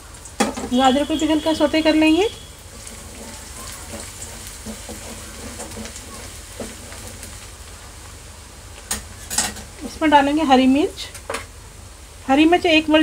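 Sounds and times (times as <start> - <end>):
vegetables sizzling in hot oil: 0.0 - 13.0
spatula scraping pan: 2.5 - 7.5.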